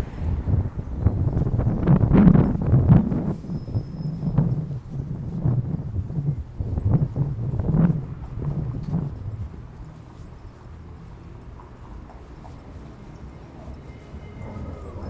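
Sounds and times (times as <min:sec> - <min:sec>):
low uneven rumble: 0:00.0 - 0:15.0
footsteps on concrete: 0:04.5 - 0:15.0.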